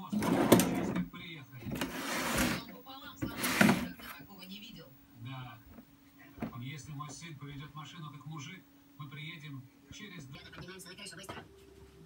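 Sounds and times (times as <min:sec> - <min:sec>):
drawer slides rasping: 0:00.0 - 0:01.1, 0:01.7 - 0:04.2.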